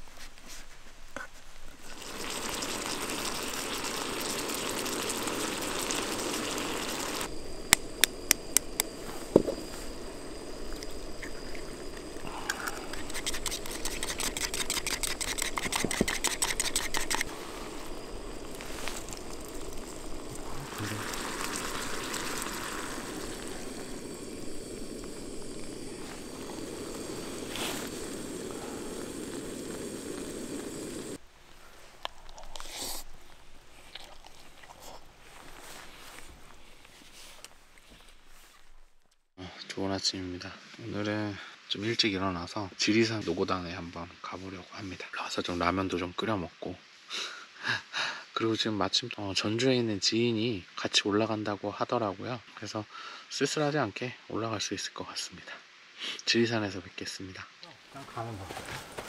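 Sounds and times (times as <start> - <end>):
steady hiss: 0.0 - 59.0
food simmering in a pot: 1.8 - 31.2
gas stove burner hissing: 1.9 - 31.2
egg cracking clicks and knock: 7.6 - 9.5, 10.8 - 17.3
egg beaten in metal cup: 12.4 - 17.3.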